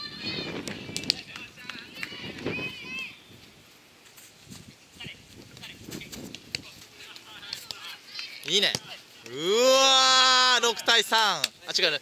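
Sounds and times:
players shouting: 0:07.0 - 0:11.2.

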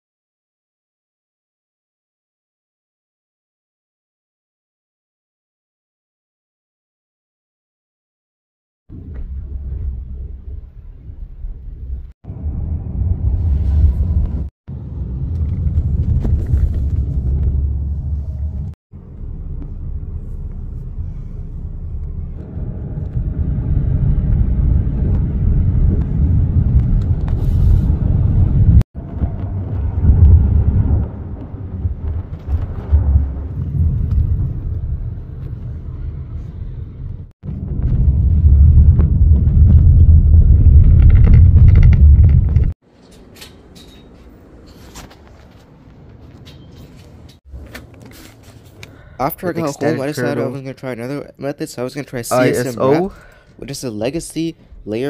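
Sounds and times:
car cabin rumble while driving: 0:08.9 - 0:42.8.

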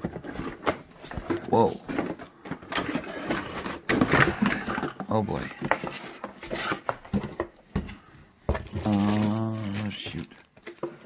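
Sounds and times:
cardboard scraping and rustling: 0:00.0 - 0:08.0, 0:08.6 - 0:11.0.

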